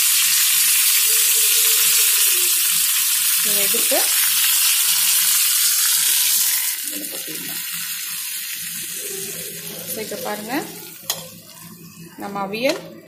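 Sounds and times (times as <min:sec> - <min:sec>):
hot oil sizzling in a pan: 0:00.0 - 0:13.0.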